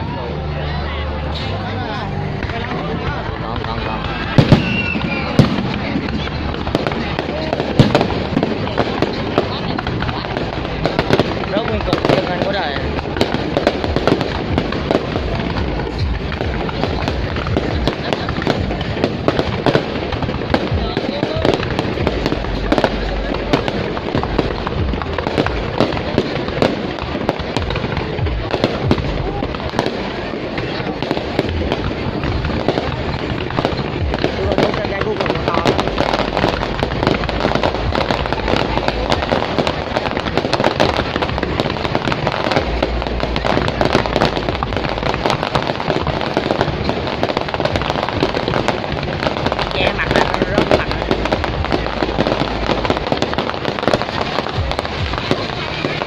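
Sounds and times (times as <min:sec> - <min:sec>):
continuous fireworks rumble: 0:00.0 - 0:56.0
fireworks bangs and crackle: 0:00.0 - 0:56.0.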